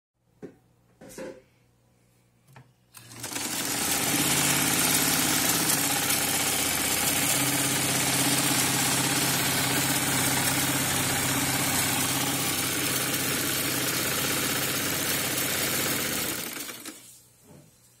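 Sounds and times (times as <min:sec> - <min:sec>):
sewing machine running: 0:03.0 - 0:17.1.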